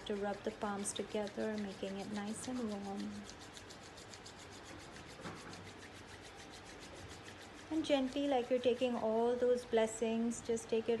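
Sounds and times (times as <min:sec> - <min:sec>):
palms rubbing together: 0:00.0 - 0:10.0.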